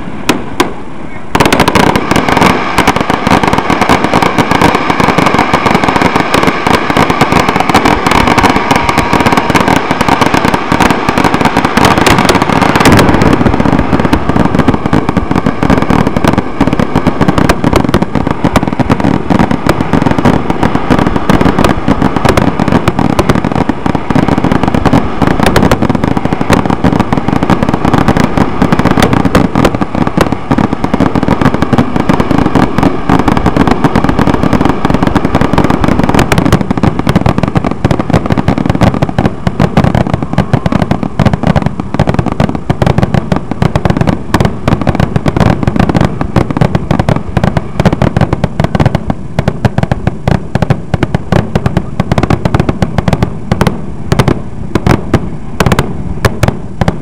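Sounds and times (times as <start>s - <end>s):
fireworks bursting and crackling: 0.0s - 57.0s.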